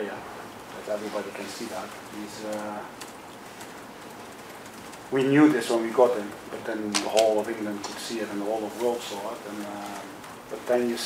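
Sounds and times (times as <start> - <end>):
low hiss of room tone: 0.0 - 11.0.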